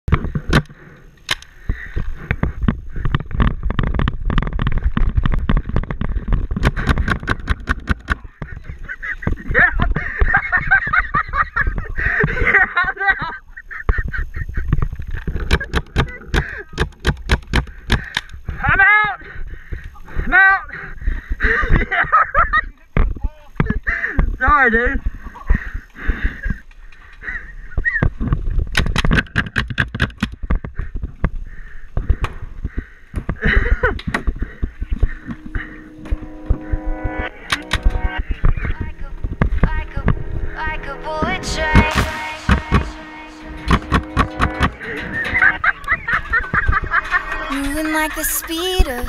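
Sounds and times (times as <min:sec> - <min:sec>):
low rumble of movement: 0:34.3 - 0:47.5.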